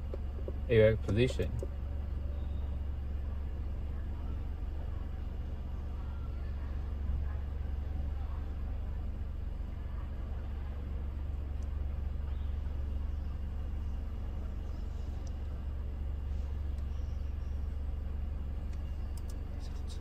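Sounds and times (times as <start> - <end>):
low rumble in car cabin: 0.0 - 20.0
faint light clicks: 18.7 - 20.0.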